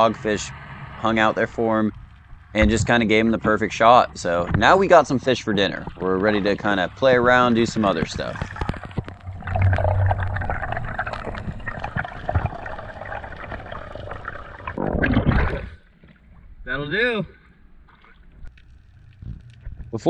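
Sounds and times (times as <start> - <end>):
water rushing underwater: 5.6 - 16.6.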